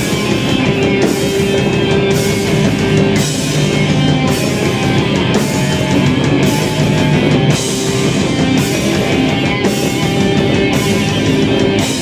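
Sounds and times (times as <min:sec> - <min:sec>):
bass: 0:00.0 - 0:12.0
distorted electric guitars: 0:00.0 - 0:12.0
drum hits: 0:00.0 - 0:12.0.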